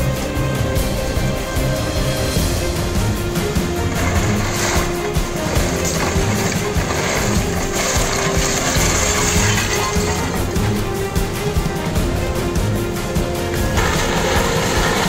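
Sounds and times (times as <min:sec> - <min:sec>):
background music with held notes: 0:00.0 - 0:15.0.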